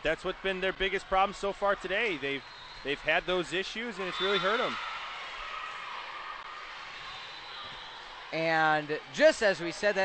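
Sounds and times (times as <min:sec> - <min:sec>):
faint murmur of crowd in gym: 0:00.0 - 0:10.0.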